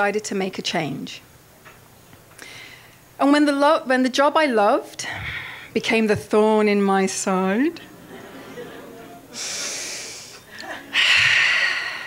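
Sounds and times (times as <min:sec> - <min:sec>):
woman breathing close to microphone: 0:02.4 - 0:03.0, 0:05.0 - 0:05.8, 0:09.4 - 0:12.0
loud breathy burst: 0:09.3 - 0:12.0.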